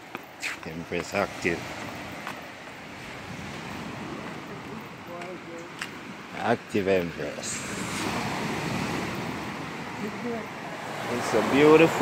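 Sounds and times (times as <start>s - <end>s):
ocean surf: 0.0s - 12.0s
wind on microphone: 1.4s - 6.3s.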